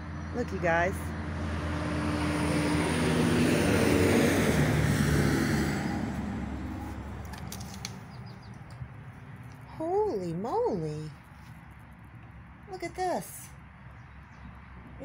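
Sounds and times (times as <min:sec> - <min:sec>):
vehicle passing by: 0:00.0 - 0:15.0.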